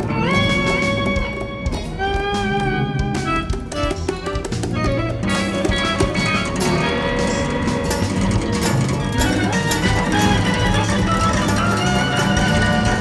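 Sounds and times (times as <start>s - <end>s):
free jazz quartet improvising: 0.0s - 13.0s.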